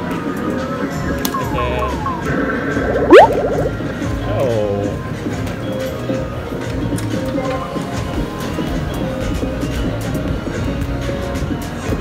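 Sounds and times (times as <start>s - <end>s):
falling blips: 1.3s - 3.8s
rising boing sweep: 2.0s - 3.9s.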